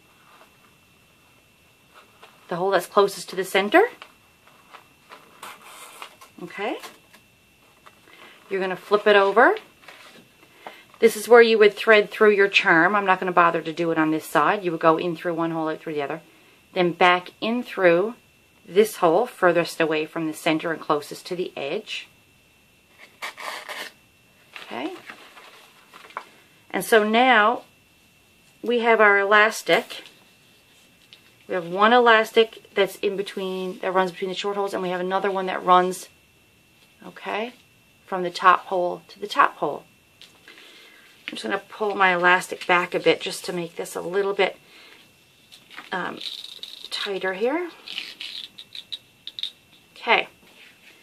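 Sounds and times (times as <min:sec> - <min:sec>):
elastic cord scratching paper: 0:04.4 - 0:07.0, 0:22.9 - 0:24.0, 0:47.7 - 0:49.4.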